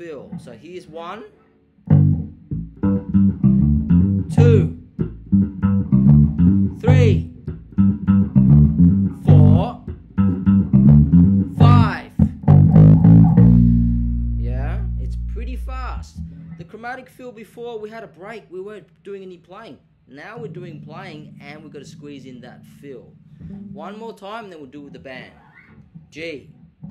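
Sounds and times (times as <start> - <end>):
electric bass funk groove: 1.9 - 16.5
man counting aloud: 4.3 - 4.8, 6.8 - 7.4, 9.2 - 9.9, 11.5 - 12.4, 14.4 - 23.1.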